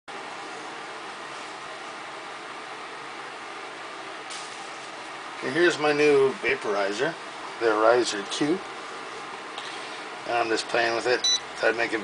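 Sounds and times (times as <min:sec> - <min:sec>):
steady background hiss: 0:00.1 - 0:12.0.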